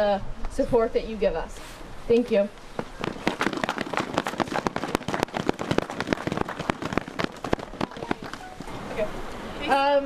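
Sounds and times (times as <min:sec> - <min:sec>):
crowd applause: 0:03.0 - 0:08.7.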